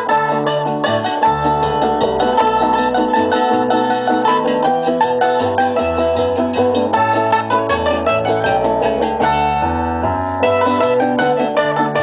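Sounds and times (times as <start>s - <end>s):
moving bass line: 0.0s - 12.0s
plucked strings picking quick notes: 0.0s - 12.0s.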